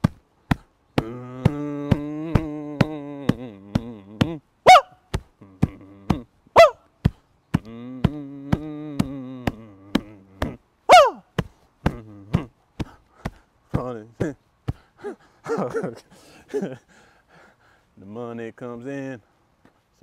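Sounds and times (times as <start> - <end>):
man humming: 0.9 - 4.6, 5.3 - 6.8, 7.4 - 12.9, 15.0 - 16.8.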